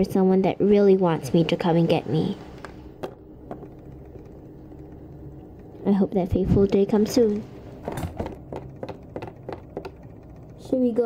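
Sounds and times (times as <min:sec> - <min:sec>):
figurines tapping on wooden table: 0:02.6 - 0:05.8, 0:07.8 - 0:10.6.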